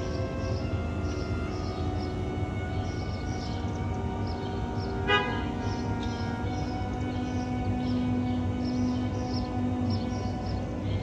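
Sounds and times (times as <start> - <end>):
ambient background music: 0.0 - 11.0
car horn toot: 4.9 - 6.5.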